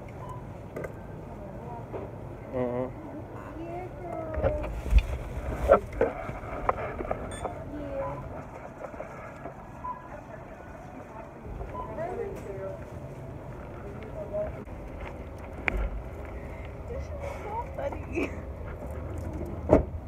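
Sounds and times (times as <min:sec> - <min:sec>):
voices talking: 0:07.3 - 0:18.6.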